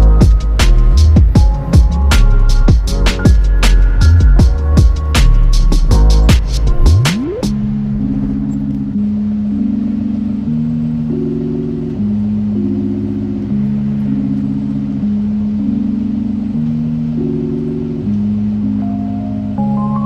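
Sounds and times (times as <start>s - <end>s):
slow synthesizer chords: 0.0s - 20.0s.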